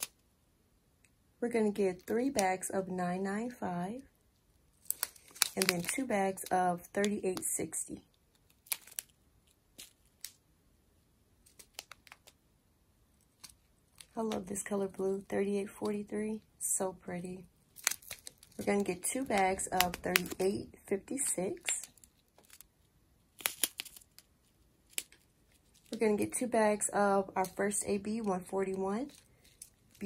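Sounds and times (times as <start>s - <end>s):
plastic bags crinkling: 4.8s - 6.5s, 8.3s - 10.4s, 17.7s - 20.7s, 21.5s - 22.7s, 23.3s - 26.4s, 28.2s - 30.0s.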